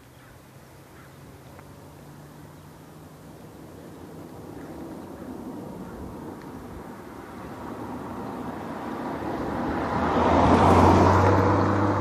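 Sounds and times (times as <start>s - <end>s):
low engine hum: 0.0s - 12.0s
car passing by: 0.7s - 12.0s.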